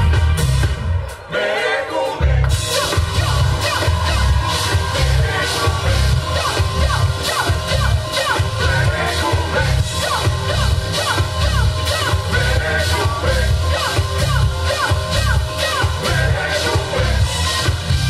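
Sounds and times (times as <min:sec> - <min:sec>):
pulsing synth bass: 0:00.0 - 0:01.1, 0:02.2 - 0:18.0
drum kit beat: 0:00.0 - 0:01.3, 0:02.4 - 0:18.0.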